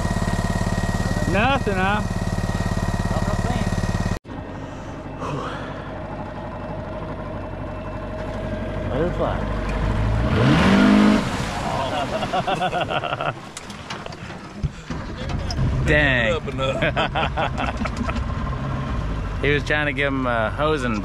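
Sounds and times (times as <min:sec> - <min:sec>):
outboard motor: 0:00.0 - 0:21.0.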